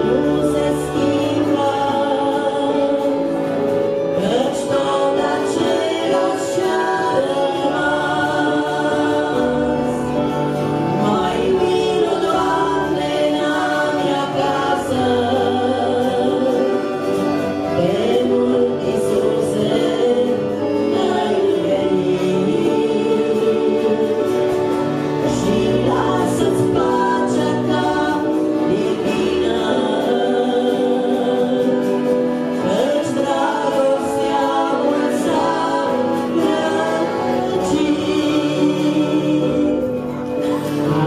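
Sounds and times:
voices singing in harmony: 0:00.0 - 0:41.0.

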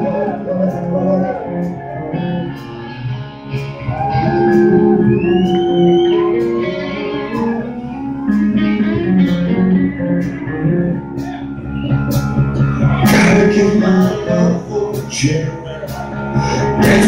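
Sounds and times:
bass guitar: 0:00.0 - 0:17.0
electric guitar sliding notes: 0:00.0 - 0:17.0
steady drum beat: 0:08.3 - 0:14.2, 0:15.0 - 0:17.0.

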